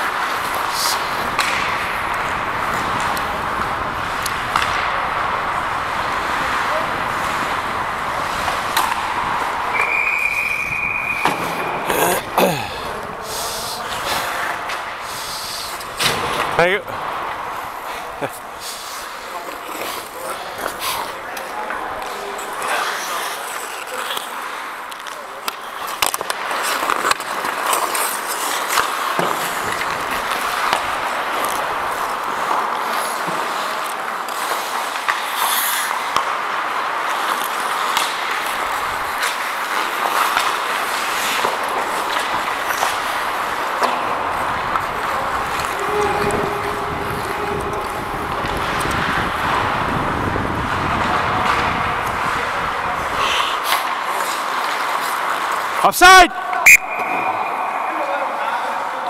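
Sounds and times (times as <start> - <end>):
skate blades scraping ice: 0.0 - 55.8
hockey sticks and puck knocking: 0.0 - 55.9.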